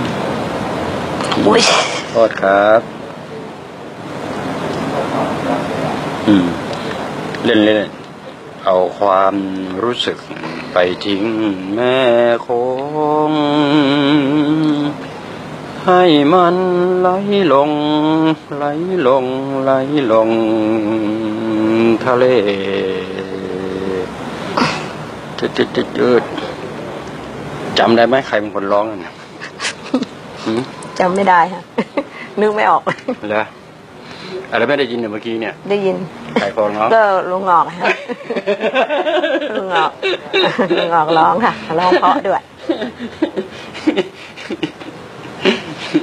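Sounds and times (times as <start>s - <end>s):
steady rushing noise: 0.0s - 11.5s
man singing chant-like: 9.1s - 15.2s, 15.8s - 24.2s
breathy rush: 42.7s - 44.7s.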